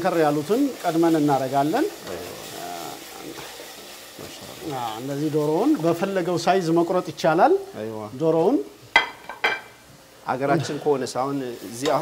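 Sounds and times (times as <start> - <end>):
chicken and onions sizzling: 0.0 - 12.0
wooden spoon stirring: 0.7 - 5.9.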